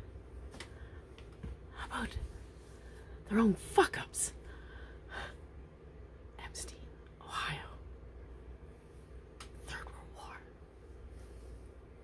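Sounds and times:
low room hum: 0.0 - 12.0
faint whispering: 1.6 - 3.6, 6.3 - 8.0, 9.5 - 10.8
woman breathing softly: 4.4 - 5.6.

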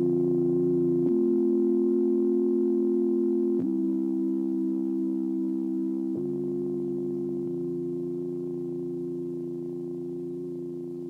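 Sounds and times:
held synthesizer chords: 0.0 - 11.0.

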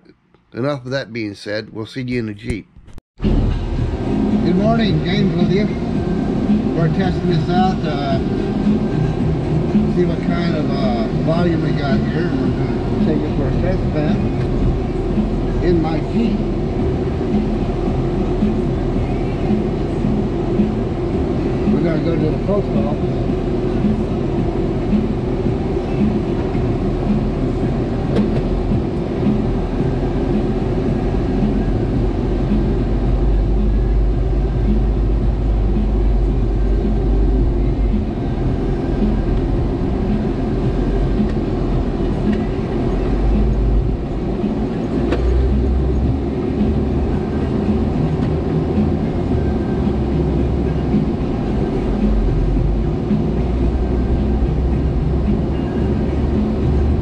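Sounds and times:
car engine and road rumble: 2.0 - 57.0.

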